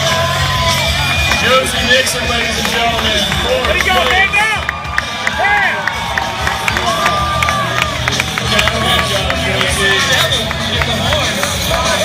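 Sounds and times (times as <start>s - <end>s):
crowd shouting and cheering: 0.0s - 12.0s
music playing: 0.0s - 12.0s.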